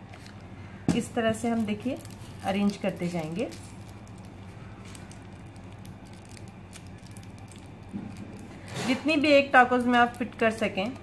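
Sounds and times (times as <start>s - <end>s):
steady low hum: 0.0s - 11.0s
wrapper clicks and rustles: 1.4s - 11.0s.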